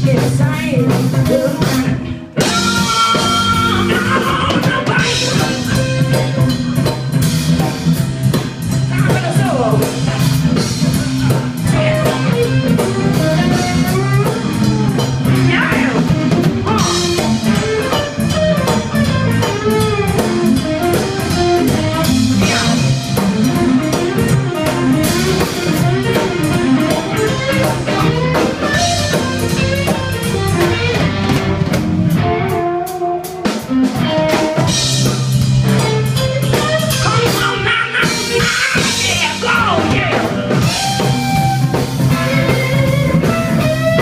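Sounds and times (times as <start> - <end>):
bass guitar: 0.0 - 44.0
drum kit: 0.0 - 44.0
electric guitar lead with bent notes: 0.0 - 44.0.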